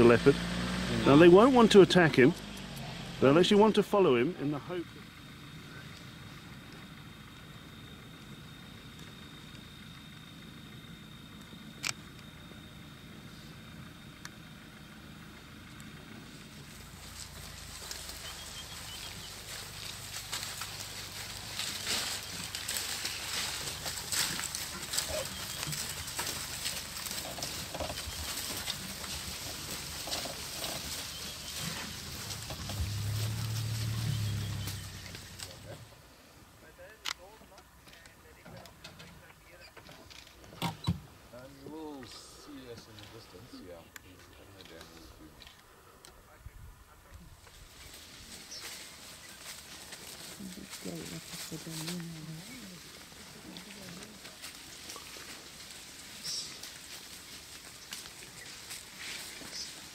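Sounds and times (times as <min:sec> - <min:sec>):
elephant low rumble: 0:00.0 - 0:36.5, 0:45.0 - 0:59.9
low hum: 0:00.0 - 0:36.5
branches snapping and rustling: 0:16.6 - 0:35.6, 0:47.5 - 0:59.9.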